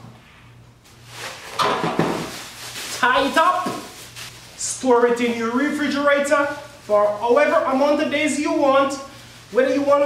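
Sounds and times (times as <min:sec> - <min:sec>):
plastic bag rustling and crinkling: 0:00.9 - 0:10.0.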